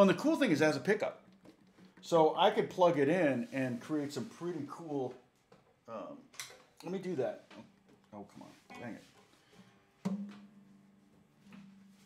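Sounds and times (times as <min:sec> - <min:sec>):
sharp knock on guitar: 0:10.0 - 0:10.6.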